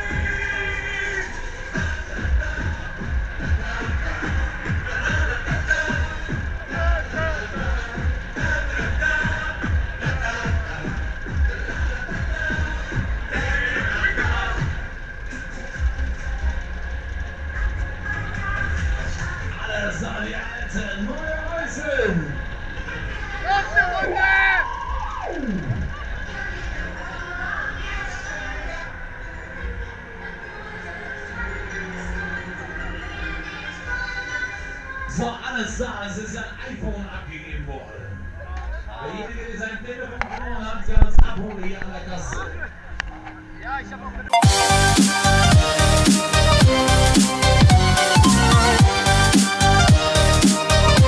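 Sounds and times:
electronic dance music: 0.0 - 14.8, 44.3 - 51.0
music: 0.0 - 23.7, 24.9 - 36.7, 42.8 - 51.0
fairground ride rumble: 0.0 - 51.0
tone sliding down in pitch: 24.6 - 26.2, 44.3 - 50.9.

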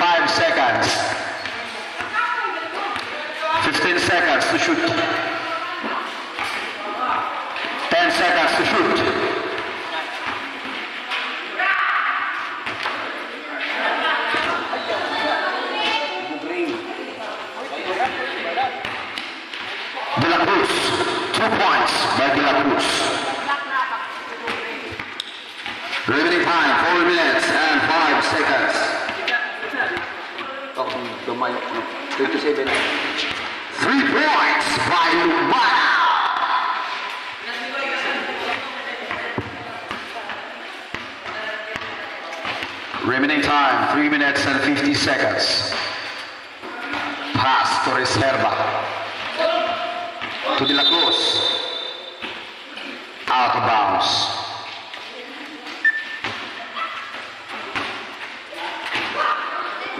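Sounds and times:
people shouting and calling out: 0.0 - 18.9, 25.9 - 39.5, 43.0 - 55.6, 56.5 - 57.5, 58.4 - 59.9
ball bouncing on concrete: 18.8 - 19.7, 24.4 - 25.9.

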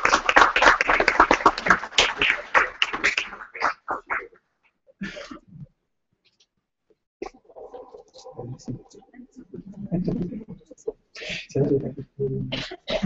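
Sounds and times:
audience applause: 0.0 - 4.2.

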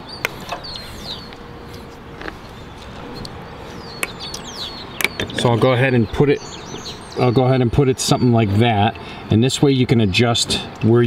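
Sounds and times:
bird chirp: 0.0 - 9.2
outdoor background noise: 0.0 - 11.0.

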